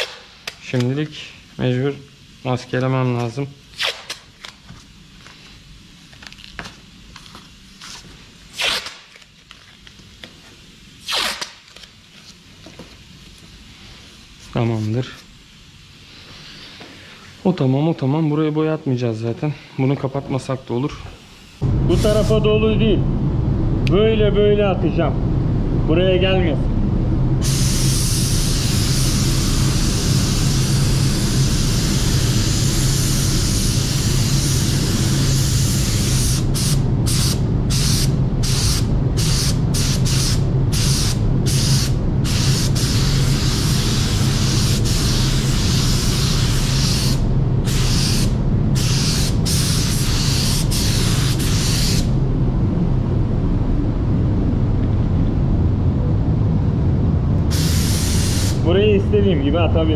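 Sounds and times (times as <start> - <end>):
steady low hum: 11.8 - 59.9
paint spray gun hissing: 27.4 - 52.1, 57.5 - 58.6.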